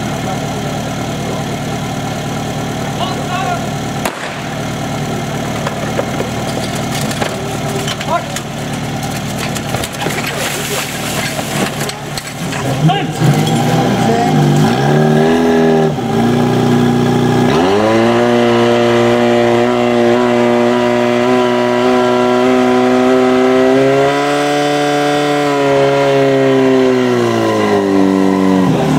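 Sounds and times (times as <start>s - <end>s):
fire pump engine running hard: 0.0s - 28.9s.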